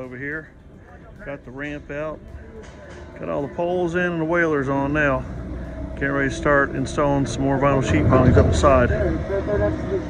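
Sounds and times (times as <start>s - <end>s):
steady low rumble: 0.0s - 10.0s
man speaking: 6.0s - 10.0s.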